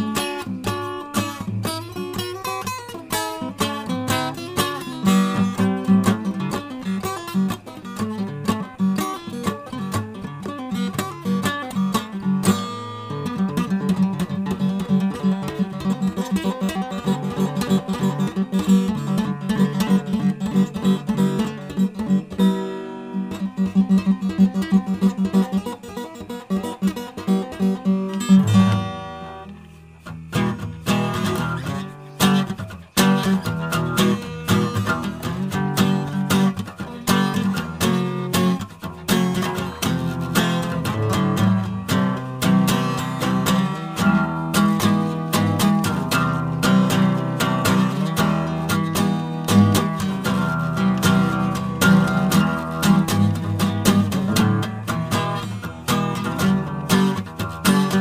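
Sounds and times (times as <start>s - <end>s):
plucked guitar notes: 0.0s - 58.0s.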